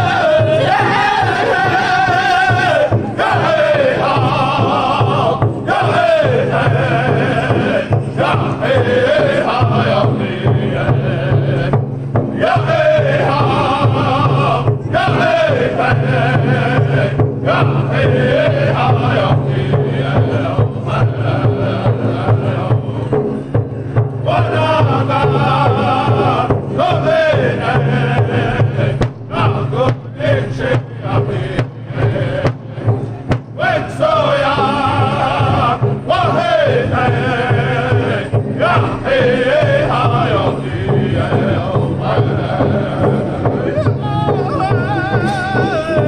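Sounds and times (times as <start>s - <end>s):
group singing in unison: 0.0s - 46.0s
large drum steady beat: 0.0s - 46.0s.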